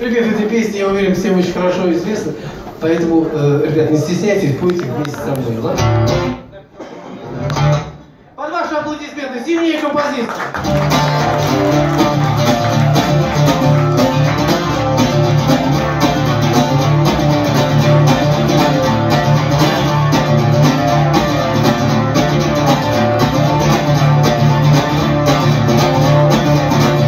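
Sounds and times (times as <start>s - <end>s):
twelve-string guitar strumming: 5.6s - 6.5s, 7.4s - 8.0s, 10.6s - 27.0s.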